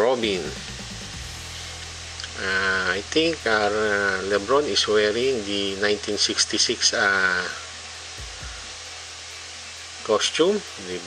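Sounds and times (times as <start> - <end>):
room hiss and low hum: 0.0 - 11.0.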